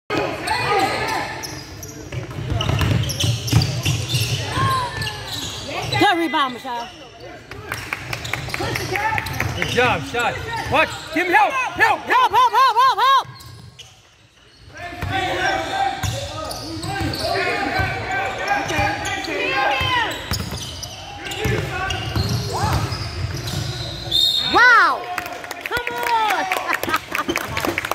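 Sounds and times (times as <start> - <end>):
players' voices: 0.1 - 13.6, 14.5 - 27.9.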